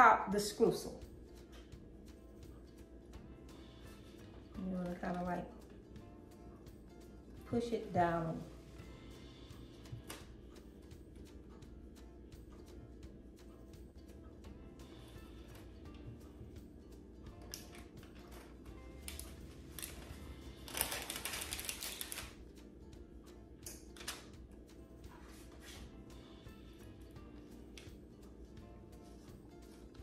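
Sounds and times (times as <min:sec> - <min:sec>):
soft background music: 0:00.0 - 0:30.0.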